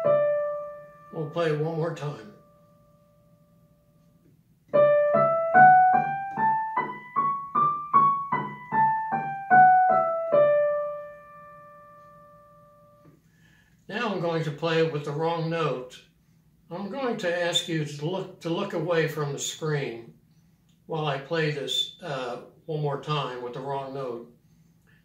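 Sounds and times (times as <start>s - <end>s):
digital piano playing scale: 0.0s - 4.1s, 4.7s - 13.1s.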